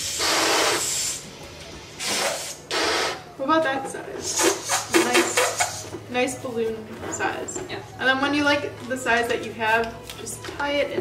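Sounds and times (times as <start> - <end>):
breath blowing up a balloon: 0.0 - 1.3, 2.0 - 3.2, 4.2 - 5.8.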